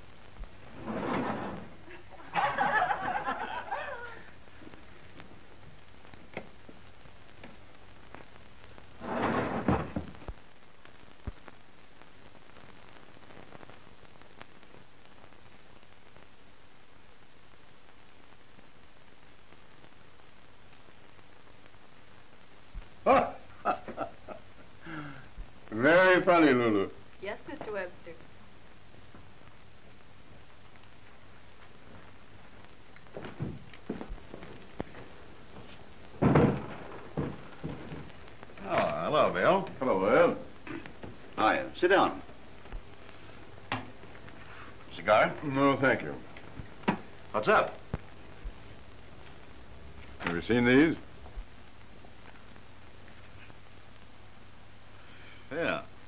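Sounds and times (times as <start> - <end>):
rustling noise: 0.0 - 23.0, 27.2 - 55.0
film soundtrack hiss: 0.0 - 56.0
door shutting with a thud: 9.0 - 10.2, 36.2 - 37.4
door shutting thump: 36.2 - 36.8.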